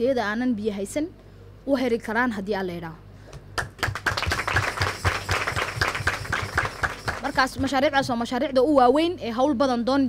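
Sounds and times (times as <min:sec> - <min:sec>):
group of people clapping: 0:03.4 - 0:07.8.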